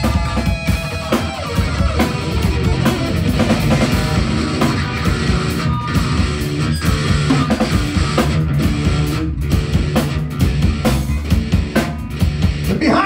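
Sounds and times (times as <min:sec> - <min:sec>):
rock band playing: 0:00.0 - 0:13.0.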